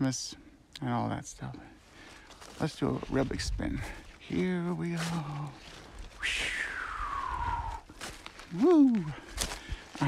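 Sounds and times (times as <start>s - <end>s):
wind rumble: 5.8s - 7.9s
high whistle tone gliding down: 6.2s - 7.8s.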